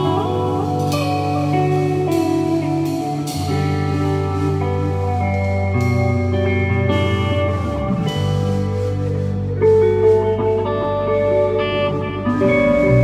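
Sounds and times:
drum and cymbal strikes: 0.0 - 10.4
bass line: 0.0 - 13.0
electric guitar: 0.0 - 13.0.

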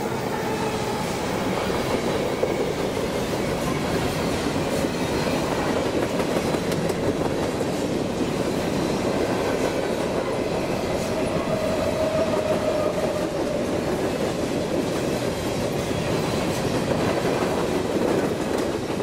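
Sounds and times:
freight train wheels rumbling: 0.0 - 19.0.

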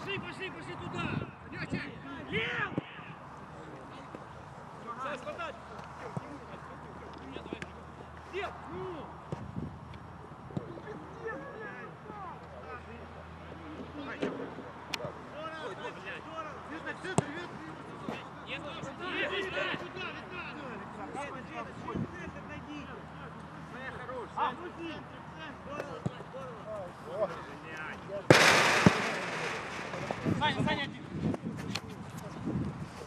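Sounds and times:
players shouting: 28.3 - 30.7
loud rush of noise: 28.3 - 31.0.

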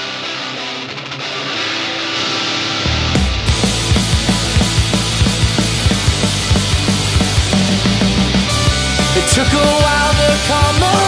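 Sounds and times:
strummed electric guitar: 0.0 - 11.0.

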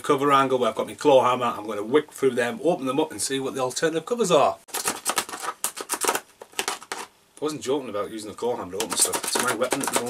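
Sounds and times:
plastic case clicking and snapping: 4.7 - 7.1, 8.8 - 10.0.

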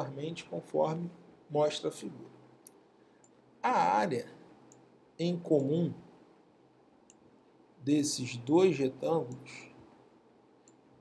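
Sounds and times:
man talking: 0.0 - 2.3, 3.6 - 4.4, 5.2 - 6.0, 7.8 - 9.7.

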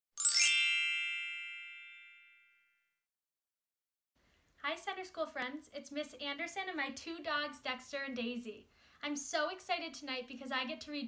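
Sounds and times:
bright chime ringing: 0.2 - 2.6.

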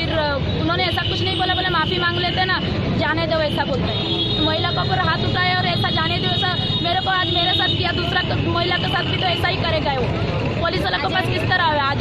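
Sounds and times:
low rumble of street traffic: 0.0 - 12.0
woman talking: 0.0 - 12.0.

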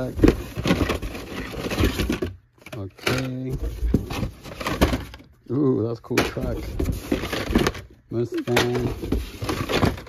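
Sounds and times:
plastic toy packs rustling and clacking: 0.0 - 10.0.

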